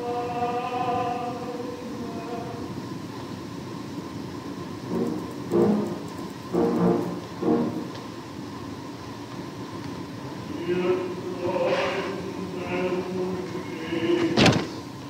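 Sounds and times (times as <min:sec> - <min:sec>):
tenor singing with piano: 0:00.0 - 0:02.8, 0:10.5 - 0:14.7
recording hiss: 0:00.0 - 0:15.0
short pitched notes: 0:04.8 - 0:08.0.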